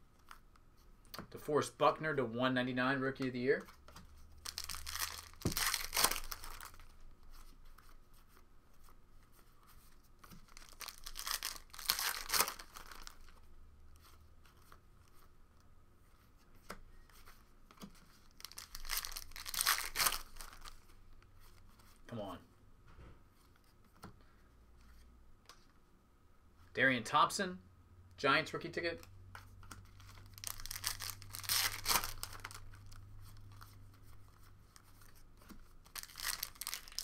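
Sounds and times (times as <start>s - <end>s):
cards rustling and ticking: 3.2s - 15.4s, 16.4s - 22.0s, 29.0s - 37.0s
card pack wrapper tearing: 4.4s - 6.8s, 10.5s - 13.2s, 18.4s - 20.7s, 30.0s - 33.0s, 35.8s - 37.0s.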